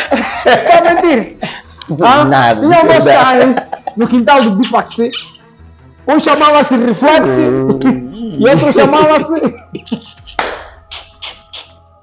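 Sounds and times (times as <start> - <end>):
man laughing: 0.0 - 1.6, 2.6 - 5.5, 7.3 - 11.7
faint background music: 0.0 - 12.0.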